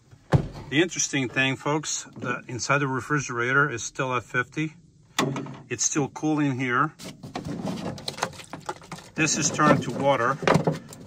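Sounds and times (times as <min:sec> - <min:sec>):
plastic jug rustling: 0:06.9 - 0:11.0.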